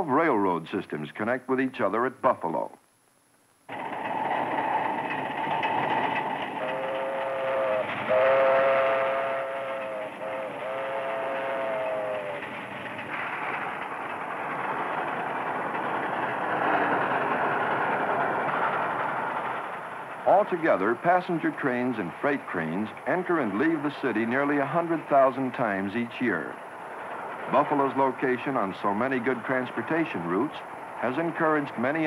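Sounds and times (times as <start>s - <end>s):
steam train rumbling: 3.7s - 32.0s
two-tone train whistle: 6.6s - 12.5s.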